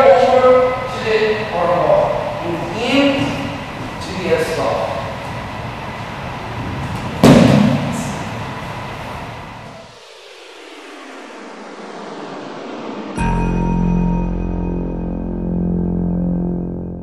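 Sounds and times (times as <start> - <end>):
rumbling room noise: 0.0 - 17.0.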